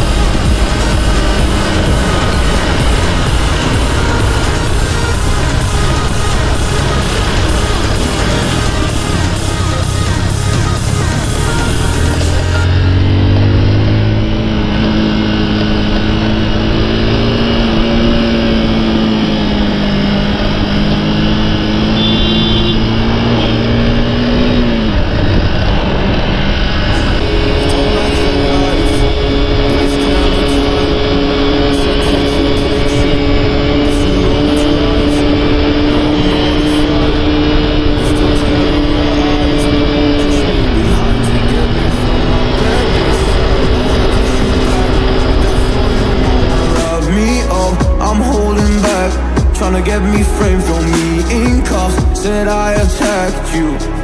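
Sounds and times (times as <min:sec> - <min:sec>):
motorcycle engine running: 0:00.0 - 0:54.0
rush of noise: 0:00.0 - 0:54.0.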